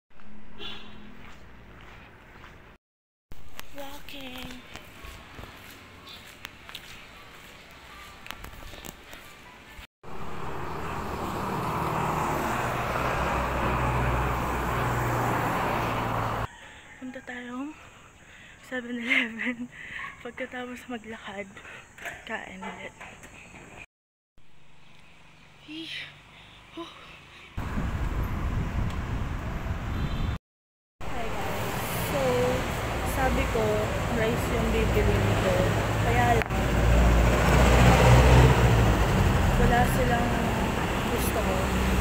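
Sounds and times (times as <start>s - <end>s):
roadside traffic rumble: 0.1s - 17.8s, 21.0s - 30.4s, 31.0s - 42.0s
vehicle engine running: 10.1s - 16.5s.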